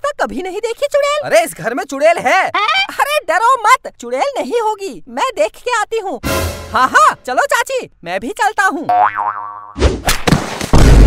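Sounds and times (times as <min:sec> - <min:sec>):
cartoon springy boing: 0:08.9 - 0:09.8.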